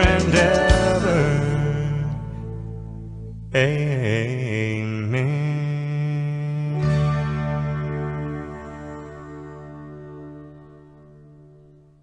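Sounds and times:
country music: 0.0 - 12.0.

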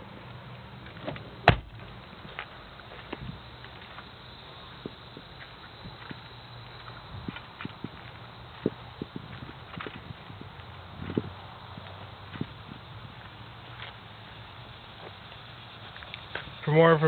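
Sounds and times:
footsteps on pavement: 0.5 - 17.0.

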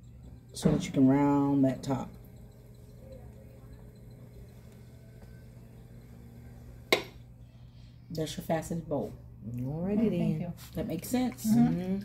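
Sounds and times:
pottery wheel humming: 0.0 - 12.0.

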